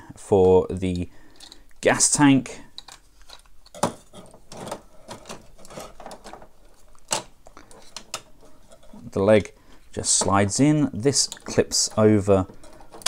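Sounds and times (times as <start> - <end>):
plastic toy parts clicking: 0.9 - 1.8, 2.7 - 3.9.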